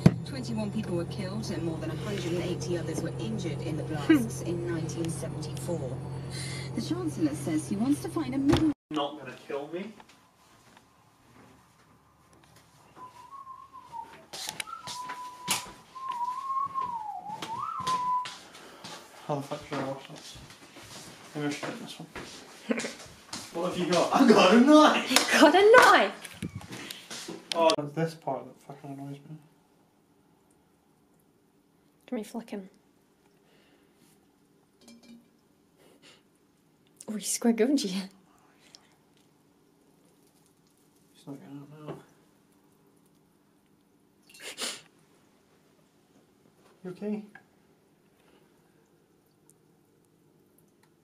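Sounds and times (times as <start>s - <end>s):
person whistling wavering note: 12.9s - 18.4s.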